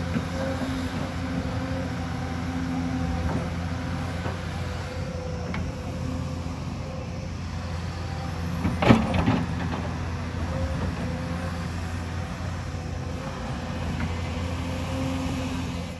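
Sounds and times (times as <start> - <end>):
excavator diesel engine running: 0.0 - 15.9.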